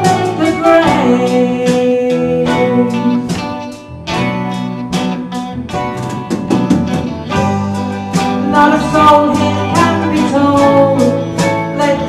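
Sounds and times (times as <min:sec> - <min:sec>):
guitars: 0:00.0 - 0:12.0
steady drum beat: 0:00.0 - 0:12.0.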